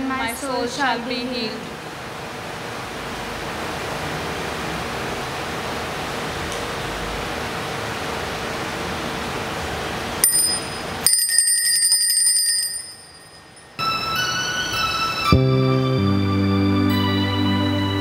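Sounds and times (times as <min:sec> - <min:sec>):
faint hum: 0:00.0 - 0:11.1
room hiss: 0:00.0 - 0:11.1
small bell ringing rapidly: 0:10.2 - 0:13.8.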